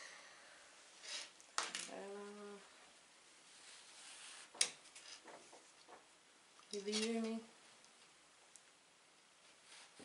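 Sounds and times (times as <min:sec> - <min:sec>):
soft clicks and rustles: 0:03.6 - 0:10.0.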